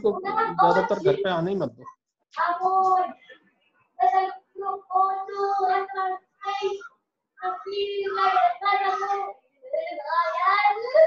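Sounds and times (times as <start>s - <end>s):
child singing: 0.0s - 1.5s, 2.4s - 3.2s, 4.0s - 11.0s.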